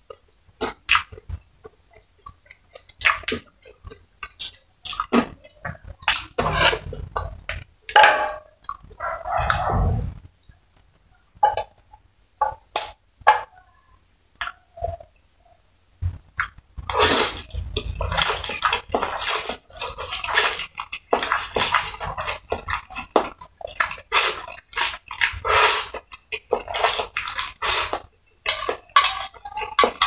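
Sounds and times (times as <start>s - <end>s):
person slurping and chewing noodles: 0.0s - 7.8s, 16.1s - 30.0s.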